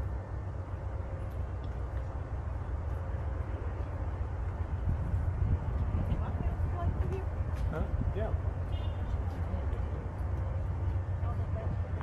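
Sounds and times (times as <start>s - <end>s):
urban background rumble and hiss: 0.0s - 12.0s.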